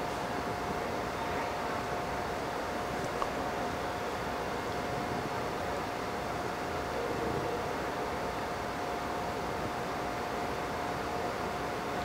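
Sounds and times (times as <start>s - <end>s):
faint high hum: 0.0s - 12.0s.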